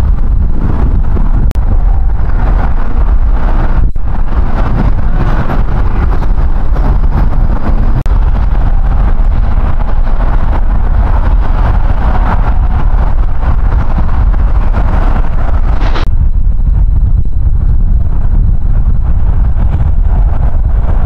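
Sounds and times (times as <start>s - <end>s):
road traffic rumble: 0.0s - 21.0s
wind on microphone: 0.0s - 21.0s.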